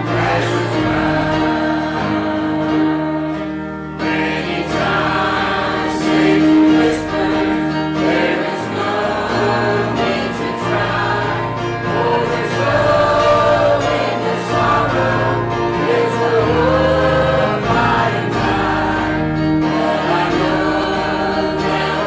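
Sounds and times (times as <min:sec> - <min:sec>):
church choir singing a hymn: 0:00.0 - 0:22.0
piano: 0:00.0 - 0:22.0.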